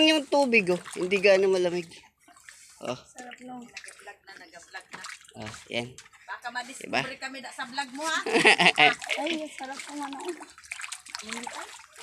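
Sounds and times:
water sloshing and splashing: 0.0 - 12.0.

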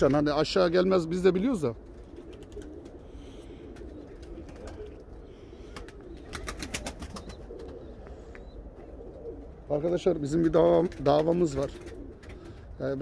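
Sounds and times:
pigeons cooing: 0.2 - 13.0.

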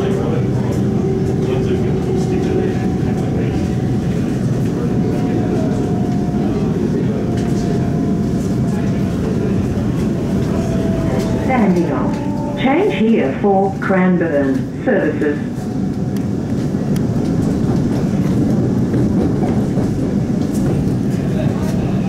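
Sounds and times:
onboard announcement voice: 0.0 - 15.8
train wheels rumbling on rail: 0.0 - 22.0.

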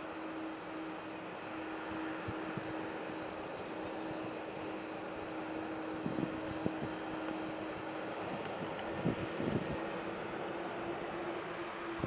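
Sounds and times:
jet engines rushing: 0.0 - 12.0.

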